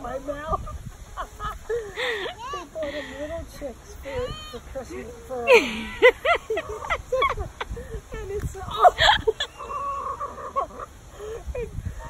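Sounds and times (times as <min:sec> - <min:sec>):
chickens calling: 0:00.0 - 0:08.0, 0:08.6 - 0:12.0.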